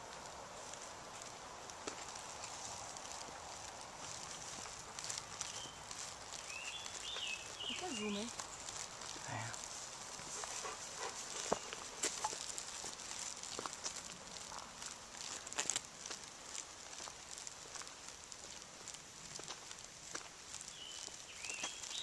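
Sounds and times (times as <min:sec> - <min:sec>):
light clicks and crackles: 0:00.0 - 0:22.0
steady high hiss: 0:00.0 - 0:22.0.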